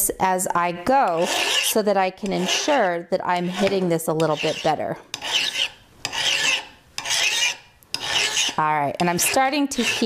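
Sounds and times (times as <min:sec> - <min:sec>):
hand file rasping on metal: 0:01.0 - 0:10.0.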